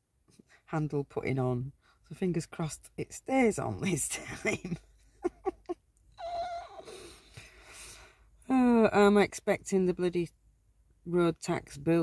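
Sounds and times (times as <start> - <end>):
dog high whine: 6.2 - 7.0
dog whimpering: 6.2 - 7.1.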